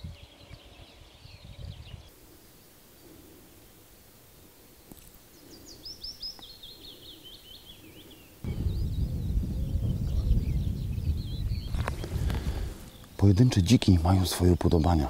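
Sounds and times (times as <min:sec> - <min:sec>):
small songbird singing: 0:00.0 - 0:03.8, 0:04.4 - 0:15.0
loud low rumble: 0:08.5 - 0:13.4.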